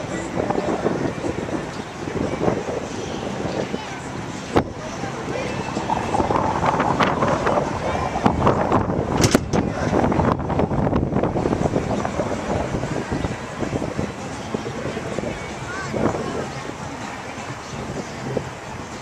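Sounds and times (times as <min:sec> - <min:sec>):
gusty wind buffeting microphone: 0:00.0 - 0:19.0
indistinct voices: 0:00.0 - 0:19.0.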